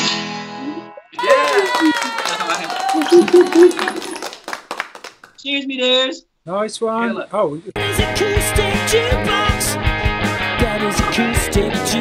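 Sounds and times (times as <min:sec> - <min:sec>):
hand claps: 0:01.2 - 0:05.4.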